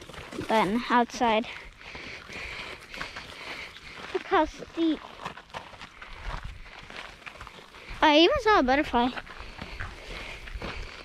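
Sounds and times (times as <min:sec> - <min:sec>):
footsteps on dirt trail: 0:00.0 - 0:11.0.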